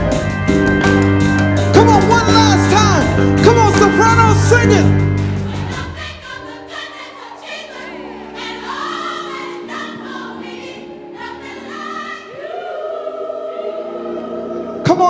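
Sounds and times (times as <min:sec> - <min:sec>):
gospel choir singing: 0:01.9 - 0:15.0.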